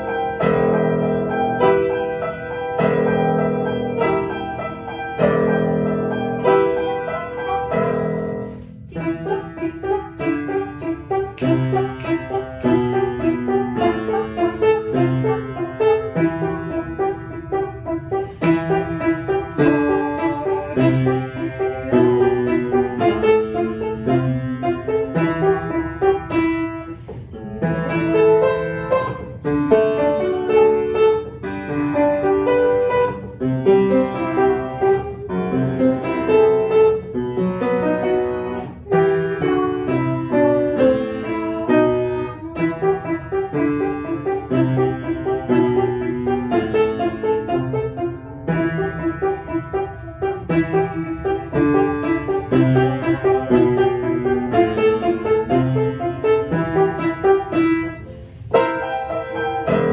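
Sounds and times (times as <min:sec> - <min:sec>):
piano played solo: 0:00.0 - 0:59.9.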